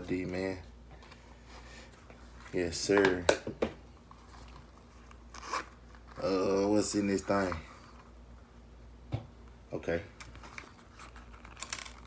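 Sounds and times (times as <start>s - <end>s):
jewelry box being opened: 10.2s - 12.0s.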